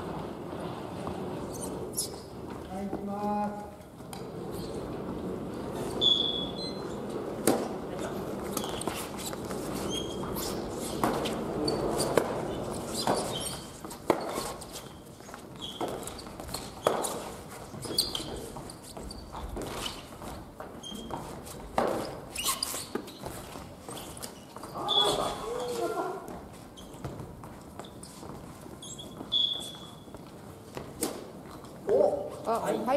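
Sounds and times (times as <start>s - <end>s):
sneaker squeaks: 1.1s - 2.6s, 4.1s - 32.6s.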